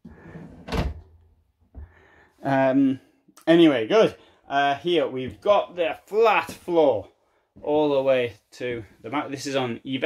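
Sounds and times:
drawer closing thunk: 0:00.6 - 0:01.0.

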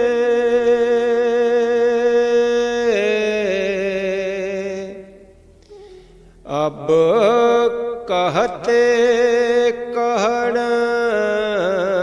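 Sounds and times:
person singing chant: 0:00.0 - 0:12.0.

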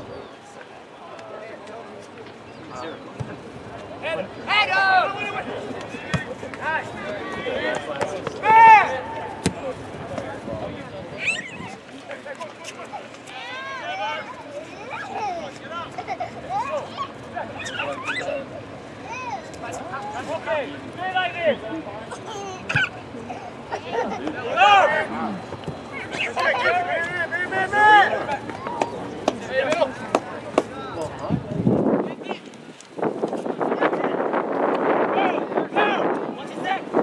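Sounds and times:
soccer ball being kicked: 0:09.4 - 0:10.3
players calling out: 0:11.0 - 0:31.2.

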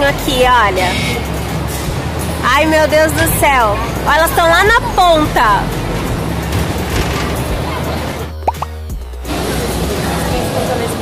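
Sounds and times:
amusement park play area din: 0:00.0 - 0:11.0
music playing: 0:00.0 - 0:11.0.

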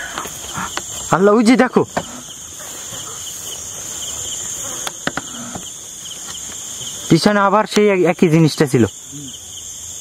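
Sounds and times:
insects chirping: 0:00.0 - 0:10.0.

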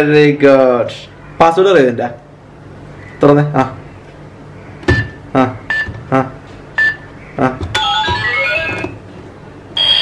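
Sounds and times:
electronic beep tune: 0:04.9 - 0:06.0, 0:06.8 - 0:07.1.

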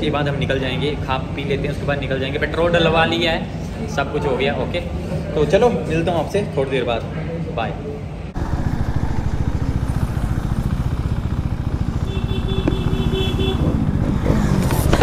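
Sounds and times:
motorcycle engine running: 0:08.4 - 0:15.0.

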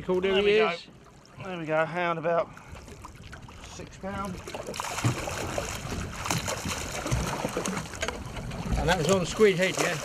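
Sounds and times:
water lapping against boat: 0:00.0 - 0:10.0.

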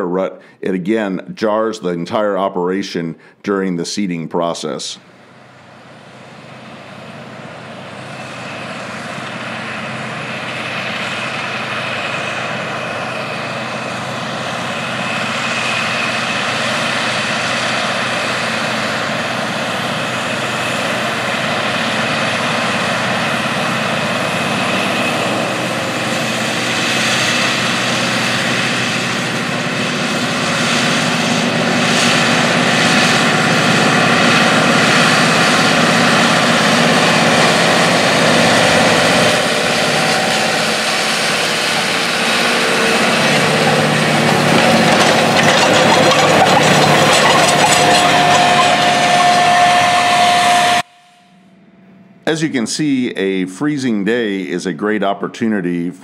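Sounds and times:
diesel tractor running under load: 0:05.0 - 0:51.6
air drill rattling over ground: 0:07.2 - 0:50.9.

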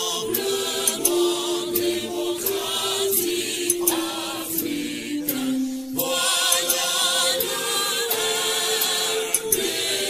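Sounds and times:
choir singing: 0:00.0 - 0:10.0.

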